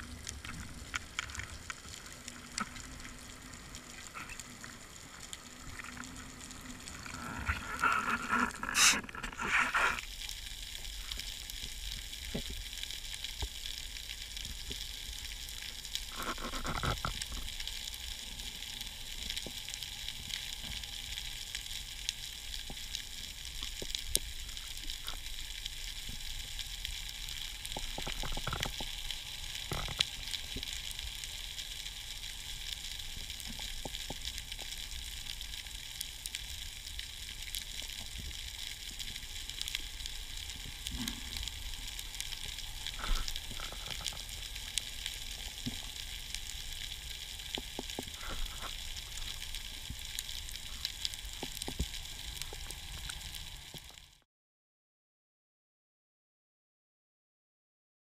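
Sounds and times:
underwater crackling hiss: 0:00.0 - 0:54.2.

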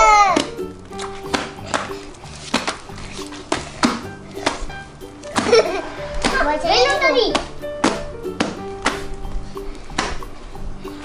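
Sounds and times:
child shouting: 0:00.0 - 0:00.5, 0:06.3 - 0:07.5
background music: 0:00.0 - 0:11.0.

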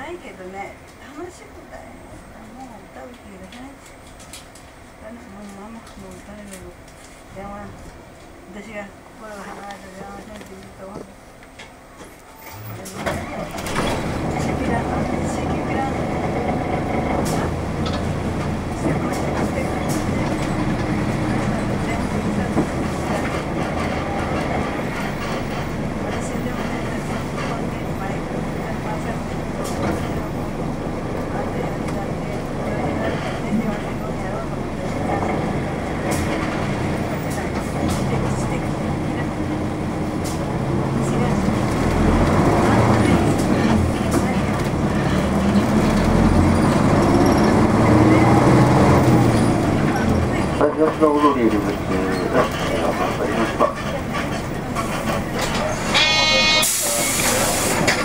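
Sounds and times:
bus diesel engine running: 0:00.0 - 0:58.0
road noise in cabin: 0:00.0 - 0:58.0.

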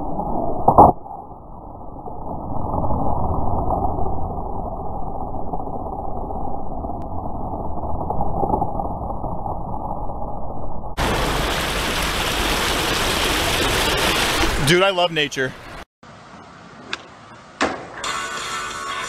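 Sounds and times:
water gushing from a pipe: 0:11.0 - 0:14.6.

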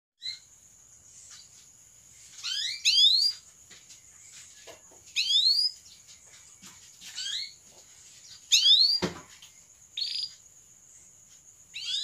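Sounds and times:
canary chirping: 0:00.2 - 0:03.5, 0:04.1 - 0:12.0.

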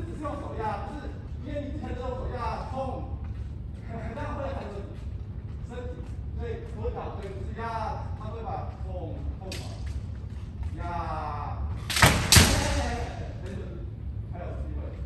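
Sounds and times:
bamboo swords striking armour: 0:11.9 - 0:13.2.

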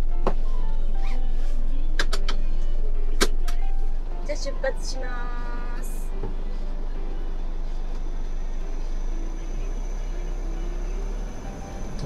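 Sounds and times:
van engine droning: 0:00.0 - 0:12.0.

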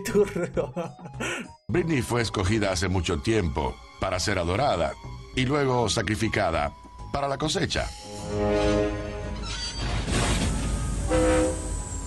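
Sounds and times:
music: 0:00.0 - 0:12.0
low rumble of moving train: 0:10.2 - 0:12.0
train horn: 0:10.9 - 0:12.0.

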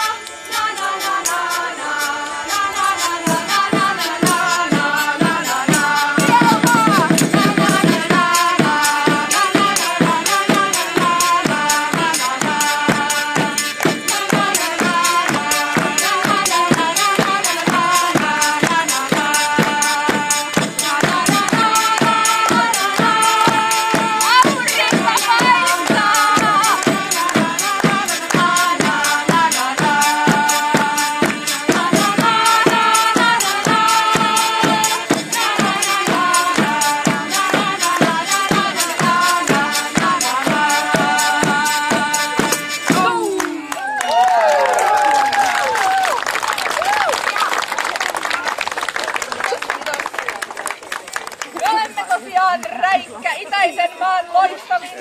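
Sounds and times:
tambourines: 0:00.0 - 0:43.3
side drum beat: 0:00.0 - 0:43.7
hurdy-gurdy: 0:00.0 - 0:43.8
women singing: 0:00.0 - 0:43.9
wind pipe melody: 0:00.0 - 0:46.6.

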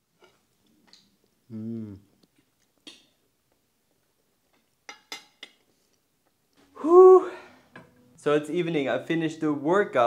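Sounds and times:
man exhaling whew: 0:06.8 - 0:07.7.

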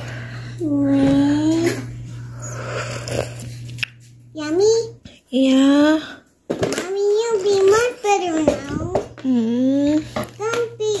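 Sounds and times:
person slurping and chewing: 0:02.6 - 0:03.6.

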